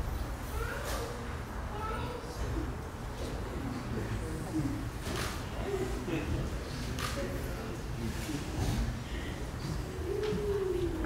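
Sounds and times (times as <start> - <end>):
crowd room noise: 0.0 - 11.0.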